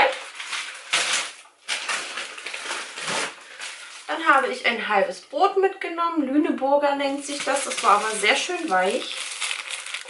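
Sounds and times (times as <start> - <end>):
plastic and paper bags crinkling: 0.0 - 4.5, 7.0 - 10.0.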